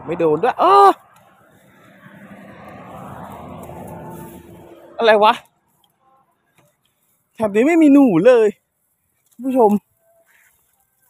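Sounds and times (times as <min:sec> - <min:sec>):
distant engine: 0:00.0 - 0:07.6.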